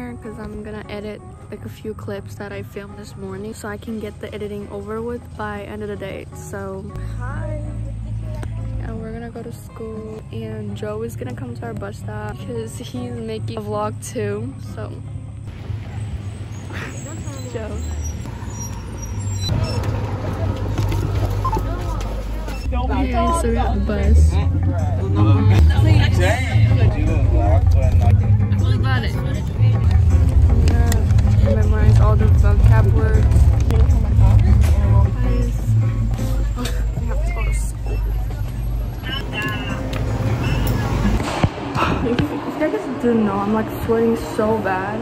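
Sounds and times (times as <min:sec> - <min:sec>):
bus engine rumble: 0:00.0 - 0:45.0
young voices talking: 0:06.2 - 0:15.1, 0:16.6 - 0:19.1, 0:20.0 - 0:45.0.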